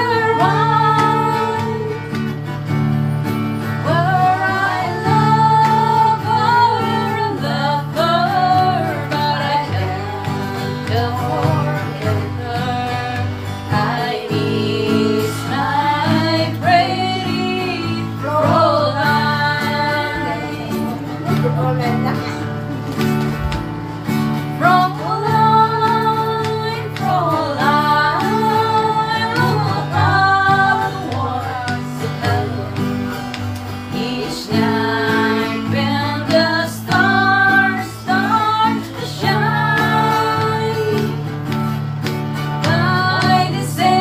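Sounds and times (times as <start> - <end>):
women singing together: 0.0 - 23.4, 24.0 - 44.0
strummed acoustic guitar: 0.0 - 44.0.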